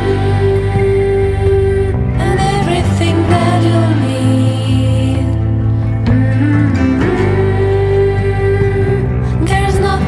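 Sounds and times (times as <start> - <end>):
instrumental band music with guitar: 0.0 - 10.0.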